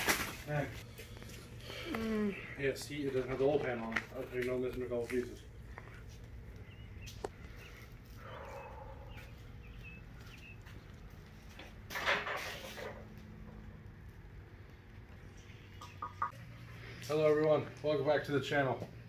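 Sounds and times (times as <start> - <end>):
plastic rustling and handling: 0.0 - 2.0.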